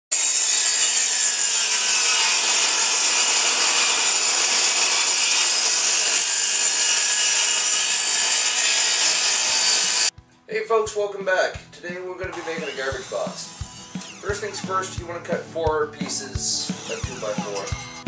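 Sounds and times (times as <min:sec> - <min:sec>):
table saw blade whining in wood: 0:00.1 - 0:10.1, 0:12.4 - 0:14.6.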